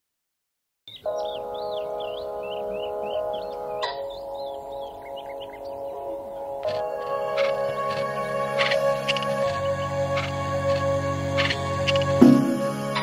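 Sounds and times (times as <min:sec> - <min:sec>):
birds singing: 0:00.9 - 0:13.0
slow ambient music: 0:01.0 - 0:13.0.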